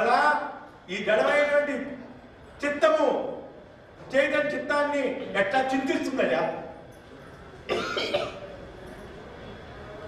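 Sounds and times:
person coughing: 7.7s - 8.4s.

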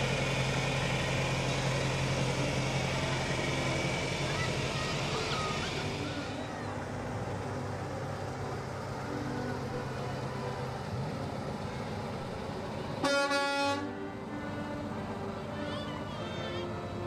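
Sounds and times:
vehicle engine running: 0.0s - 17.0s
truck air horn blast: 13.0s - 14.8s.

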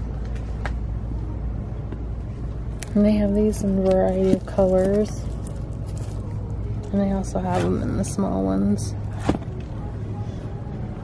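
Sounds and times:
store background hum: 0.0s - 11.0s
plastic-wrapped paper handled: 4.1s - 6.5s.

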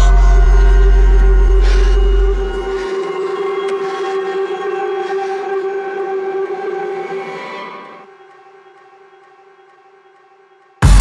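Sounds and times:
sustained electronic drone: 0.0s - 11.0s.

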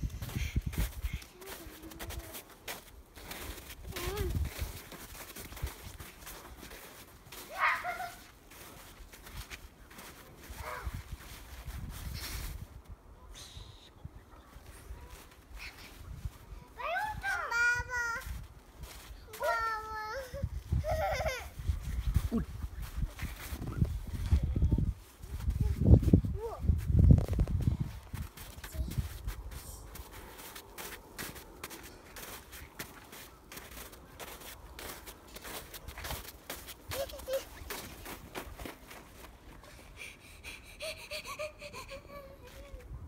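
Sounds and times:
boots crunching in snow: 0.2s - 12.6s, 27.2s - 39.7s.

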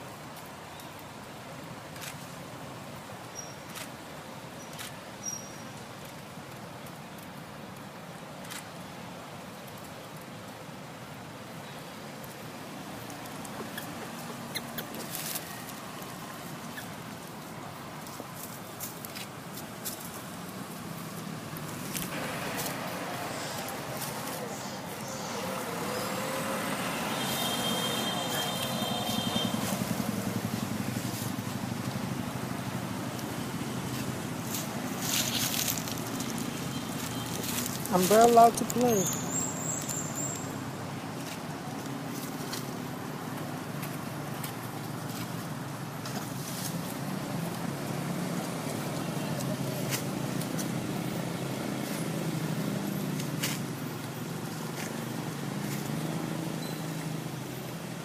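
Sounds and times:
car engine passing: 20.2s - 58.0s
motorbike engine passing: 21.2s - 40.7s.

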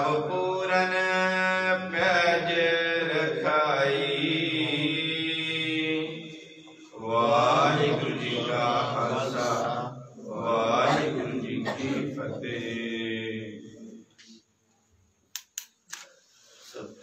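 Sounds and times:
man chanting in held notes: 0.0s - 6.3s.

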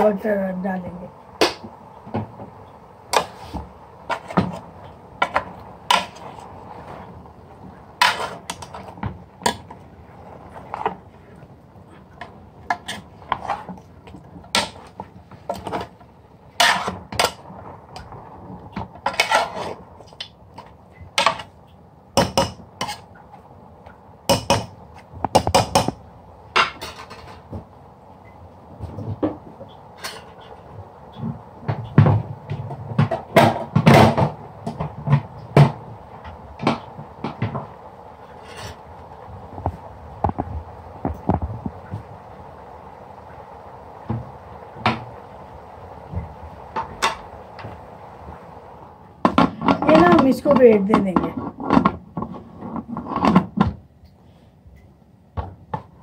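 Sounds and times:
metal spoon scraping metal pot: 16.6s - 17.4s, 19.0s - 19.8s.

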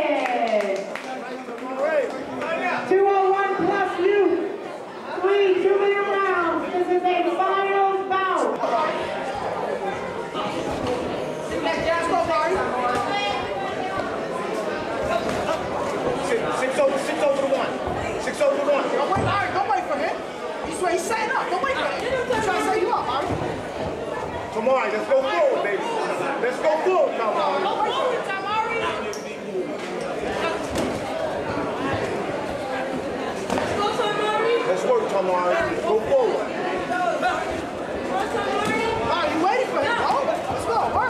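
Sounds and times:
crowd chatter: 0.0s - 41.0s
voices talking and calling out: 0.0s - 41.0s.

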